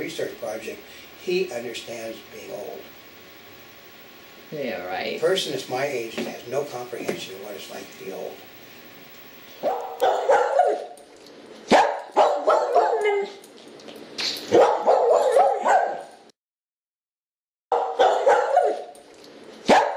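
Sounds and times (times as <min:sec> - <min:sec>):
dog barking and yipping: 0:09.6 - 0:11.0, 0:11.7 - 0:13.4, 0:14.4 - 0:16.2, 0:17.7 - 0:19.0, 0:19.6 - 0:19.9.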